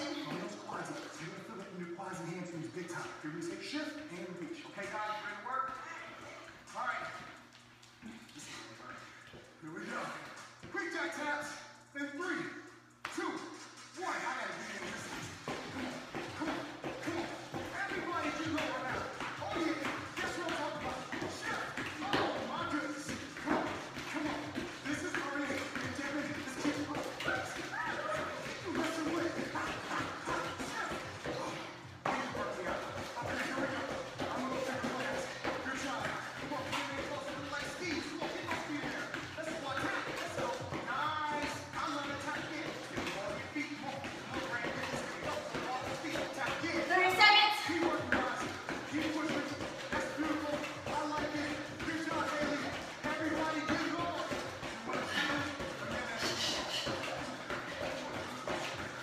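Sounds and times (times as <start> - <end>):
workout music: 0.0 - 7.4, 8.0 - 59.0
sneakers landing on floor: 14.7 - 59.0.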